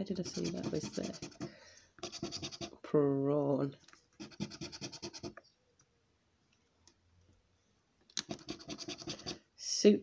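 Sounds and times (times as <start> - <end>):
coin scraping scratchcard: 0.2 - 2.7, 8.3 - 9.4.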